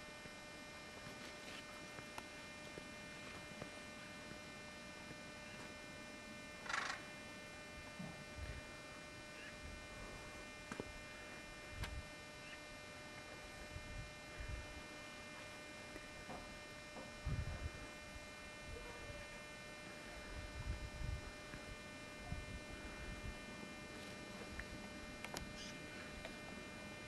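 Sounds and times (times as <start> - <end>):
faint electrical hum: 0.0 - 27.0.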